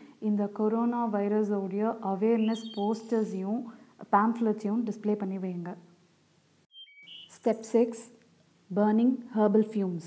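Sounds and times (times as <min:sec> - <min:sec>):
woman speaking: 0:00.2 - 0:05.8, 0:07.3 - 0:10.0.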